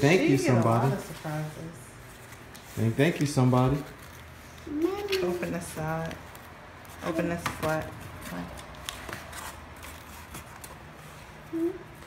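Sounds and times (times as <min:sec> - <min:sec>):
cardboard rustling and scraping: 0:05.3 - 0:11.4.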